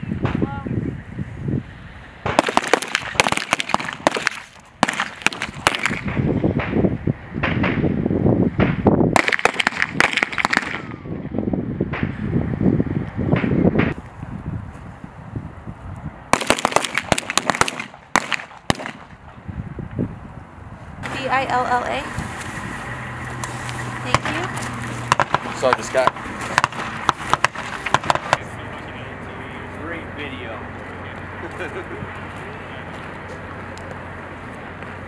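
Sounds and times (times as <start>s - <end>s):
rapid small-arms gunfire: 2.2s - 6.8s, 8.6s - 10.9s, 16.3s - 19.1s, 25.1s - 28.4s.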